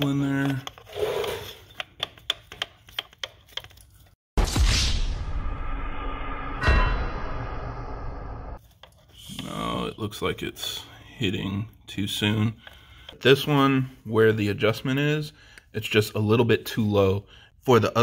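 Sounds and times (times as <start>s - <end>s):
sound effect with musical sting: 4.4s - 8.6s.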